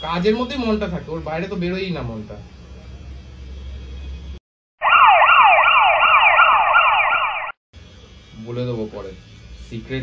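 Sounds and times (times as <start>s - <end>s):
electronic siren sweeping: 4.8s - 7.6s.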